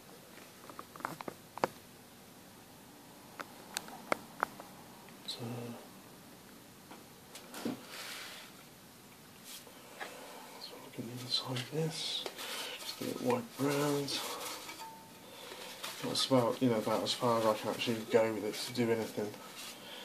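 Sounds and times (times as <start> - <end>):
metal cover scraping rustle: 11.4 - 19.8.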